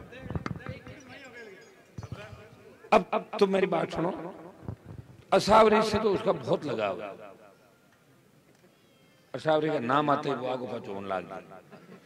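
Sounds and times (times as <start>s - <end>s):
man speaking into a microphone: 0.0s - 4.4s, 5.3s - 7.3s, 9.4s - 11.5s.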